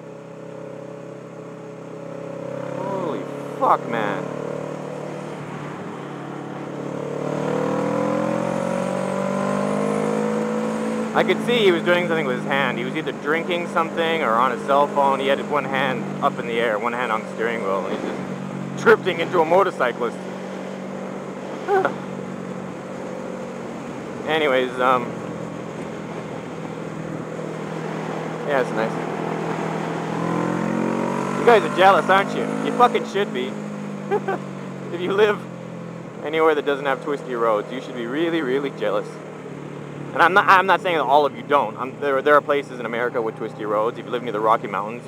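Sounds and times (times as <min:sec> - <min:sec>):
motorcycle engine accelerating: 0:00.0 - 0:45.0.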